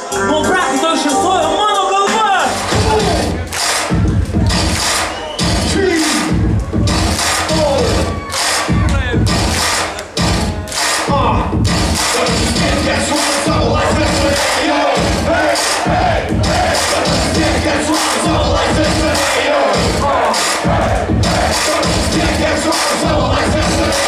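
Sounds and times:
crowd cheering and shouting: 0.0s - 24.0s
hip-hop music with heavy bass: 0.0s - 24.0s.

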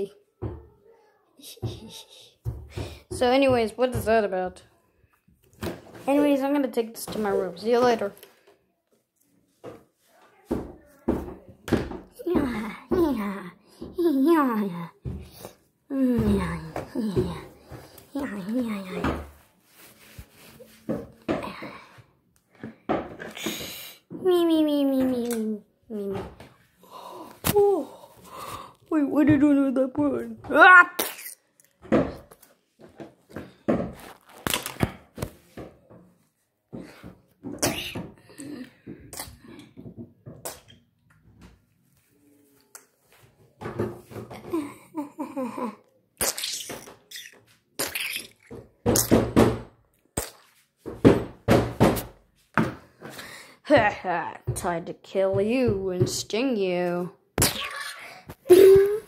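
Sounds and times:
thumps of objects being handled: 5.4s - 8.5s, 15.0s - 26.6s, 31.7s - 41.7s.

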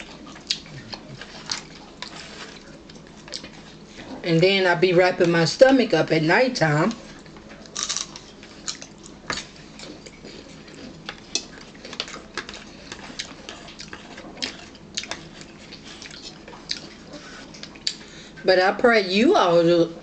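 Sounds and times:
celery being chewed: 0.0s - 4.2s, 6.9s - 18.2s.

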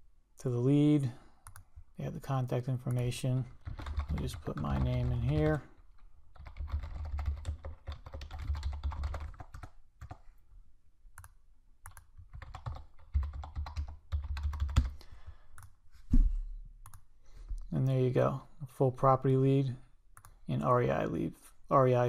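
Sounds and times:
typing on computer keyboard: 2.9s - 5.6s, 6.3s - 10.2s, 11.2s - 15.0s.

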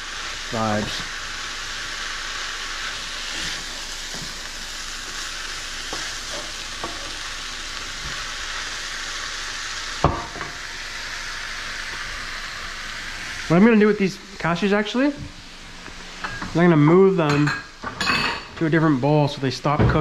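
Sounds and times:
food sizzling in a skillet: 0.0s - 20.0s.

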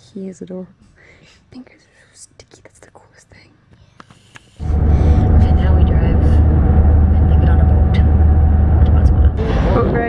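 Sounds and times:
soft whispering voices: 1.5s - 3.6s.

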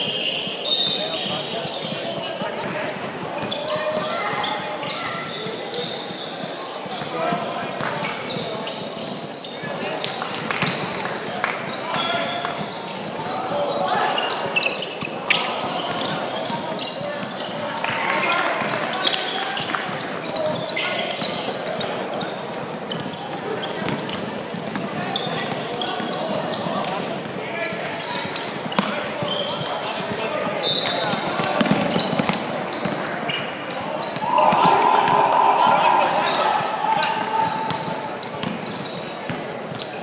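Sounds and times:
shoe squeaks: 0.0s - 2.2s, 2.8s - 11.3s, 11.9s - 17.6s, 18.9s - 35.0s, 36.2s - 40.0s
players and spectators calling: 29.1s - 39.2s.

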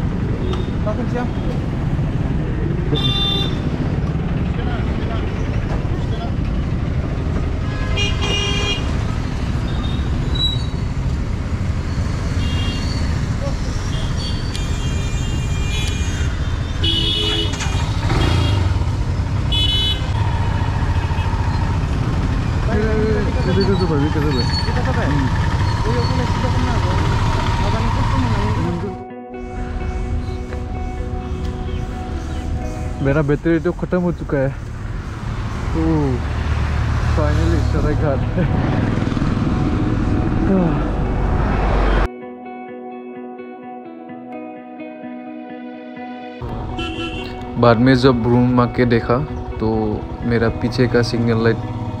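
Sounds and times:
low rumble of engines: 0.0s - 29.0s, 29.6s - 42.1s
vehicle horns honking: 2.9s - 3.8s, 7.6s - 9.1s, 12.4s - 13.1s, 13.8s - 21.6s, 46.6s - 48.3s
sustained tones: 37.0s - 42.1s.

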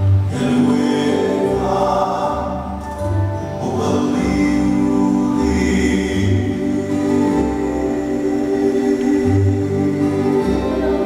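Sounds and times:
group of voices singing: 0.3s - 11.0s.

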